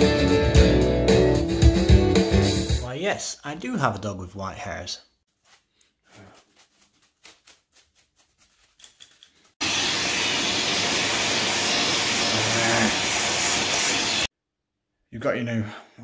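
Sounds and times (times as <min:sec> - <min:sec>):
vacuum cleaner running: 0:09.6 - 0:14.3.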